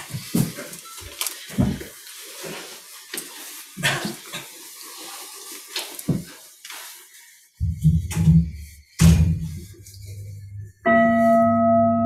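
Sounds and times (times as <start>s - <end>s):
objects knocking and clattering: 0.0s - 2.0s, 5.8s - 6.4s, 7.6s - 9.8s.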